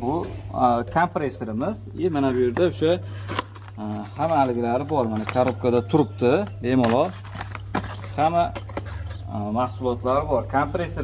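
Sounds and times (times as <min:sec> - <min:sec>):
cardboard box clicks and rustles: 0:02.6 - 0:09.0.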